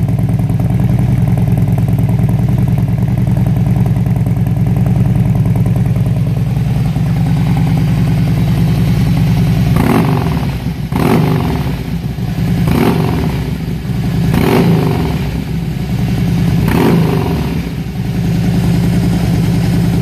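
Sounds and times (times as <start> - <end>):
motorcycle engine idling and revving: 0.0 - 20.0.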